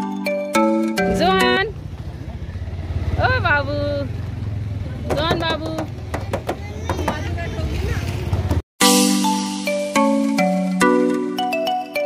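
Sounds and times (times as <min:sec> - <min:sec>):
vehicle engine running: 0:01.0 - 0:08.6.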